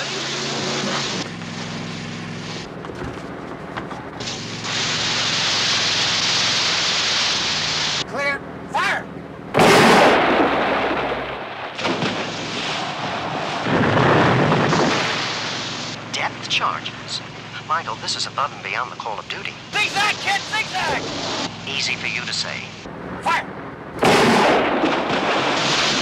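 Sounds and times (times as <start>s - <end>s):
water spray and engine: 0.0s - 23.3s, 24.0s - 26.0s
underwater explosion: 9.6s - 16.0s, 24.0s - 26.0s.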